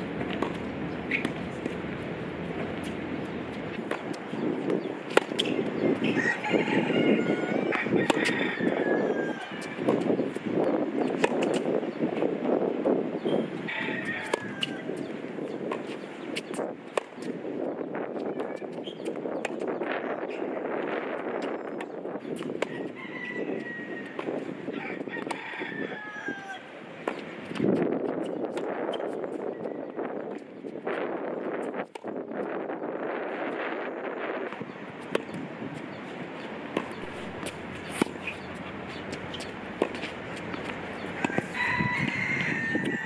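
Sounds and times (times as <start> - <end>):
outdoor ambience: 0.0 - 43.0
tennis ball being hit: 0.2 - 5.8, 7.7 - 8.3, 34.6 - 42.1
rooster crowing: 6.0 - 9.8, 13.7 - 14.9, 22.7 - 24.2, 24.8 - 26.7, 41.2 - 43.0.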